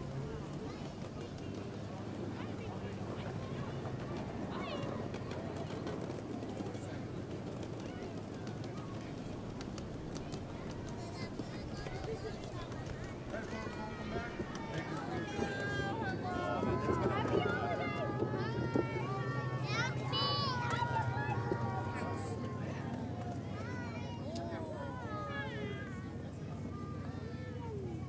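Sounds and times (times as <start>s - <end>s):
crowd chatter: 0.0s - 28.0s
miniature train humming: 0.0s - 28.0s
children's voices: 2.2s - 28.0s.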